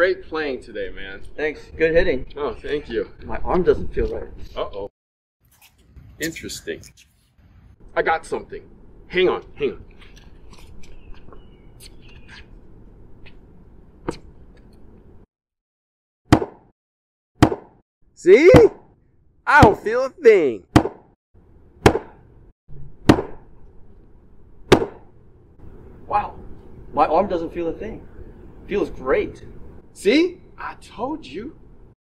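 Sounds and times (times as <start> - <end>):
low steady outdoor rumble: 7.8 - 15.2, 21.4 - 31.9.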